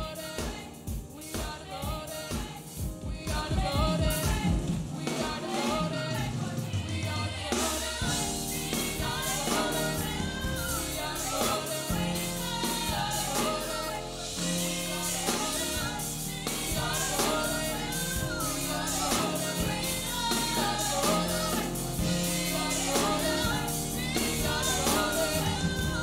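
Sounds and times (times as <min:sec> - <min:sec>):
gospel choir singing: 0:00.0 - 0:26.0
instrumental backing with beat: 0:00.0 - 0:26.0
sustained low bass notes: 0:14.2 - 0:26.0.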